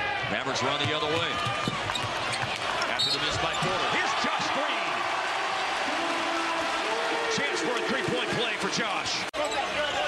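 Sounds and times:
crowd noise: 0.0s - 10.0s
sneakers squeaking: 1.2s - 3.7s.

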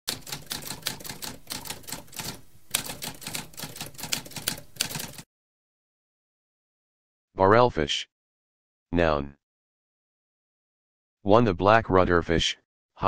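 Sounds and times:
typewriter typing: 0.1s - 5.2s.

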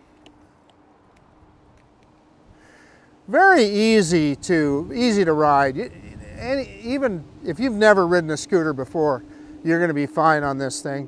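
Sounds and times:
faint electric motor whine: 0.0s - 11.0s
muffled wind and road rumble: 0.0s - 11.0s.

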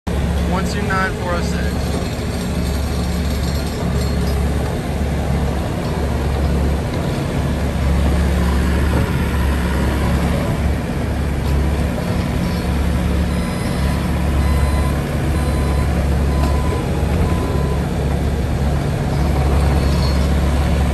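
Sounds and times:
loader diesel engine running: 0.1s - 20.9s.

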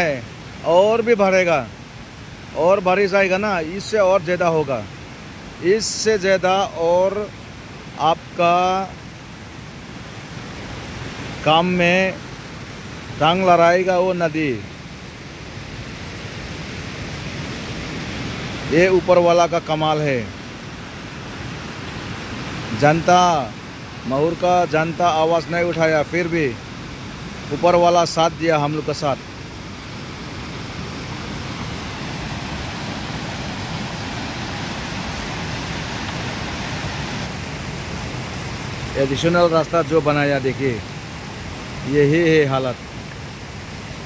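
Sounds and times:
floodwater rushing: 0.0s - 44.0s.

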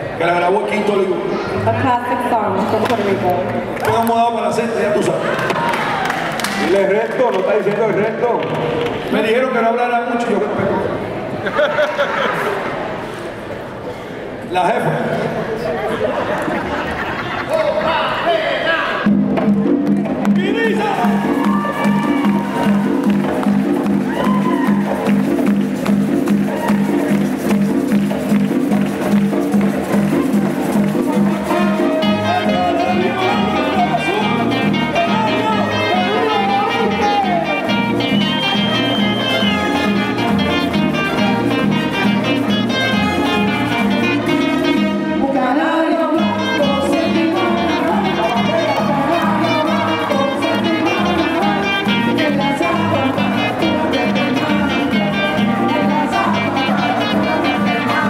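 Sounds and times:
conga drums: 18.9s - 45.2s, 46.2s - 58.0s
frame drums: 19.0s - 45.0s
saxophone: 20.9s - 58.0s
person singing: 31.0s - 38.0s, 43.4s - 58.0s.

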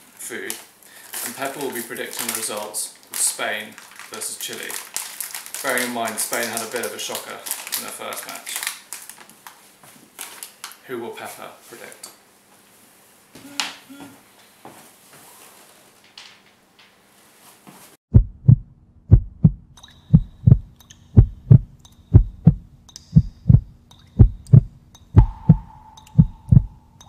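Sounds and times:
heartbeat thumps: 18.1s - 27.0s
faint steady hum: 18.6s - 27.0s.

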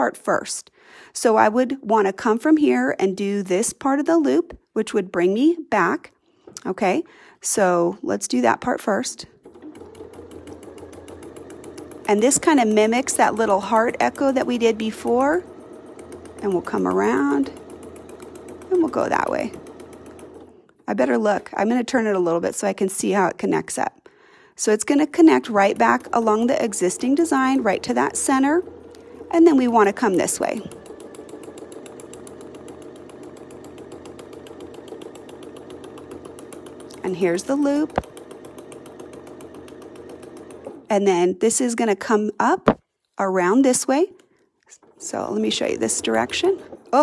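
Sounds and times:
sewing machine needle punching paper: 9.2s - 20.8s, 24.9s - 40.9s
sewing machine motor hum: 9.2s - 21.8s, 24.8s - 40.9s, 44.8s - 47.0s.

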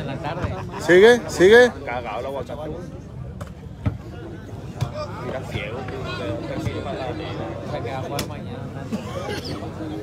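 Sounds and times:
murmur of spectator crowd: 0.0s - 10.0s.

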